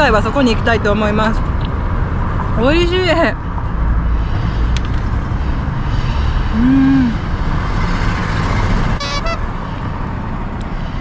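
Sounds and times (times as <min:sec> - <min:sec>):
road traffic rumble: 0:00.0 - 0:11.0
car horn toot: 0:09.0 - 0:09.5.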